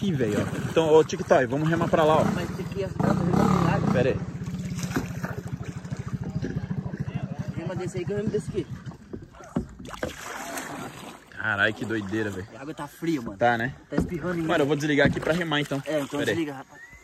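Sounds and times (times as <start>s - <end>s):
small boat motor running: 0.0s - 17.0s.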